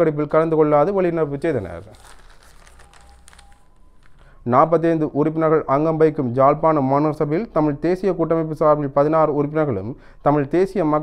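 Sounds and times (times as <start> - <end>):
newspaper pages rustling: 1.3 - 4.4.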